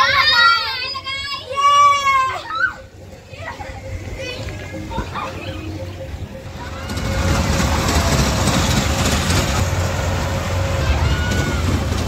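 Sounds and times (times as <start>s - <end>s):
children calling out: 0.0s - 9.0s, 10.5s - 12.0s
low background din: 1.3s - 10.8s.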